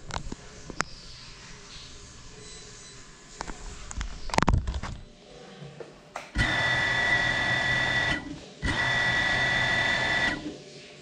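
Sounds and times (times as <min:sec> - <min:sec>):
drone motors whining: 0:06.4 - 0:10.5.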